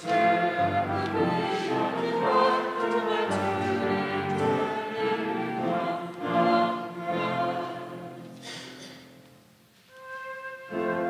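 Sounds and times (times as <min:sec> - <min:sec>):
choir singing held chords: 0:00.0 - 0:09.2, 0:10.2 - 0:11.0.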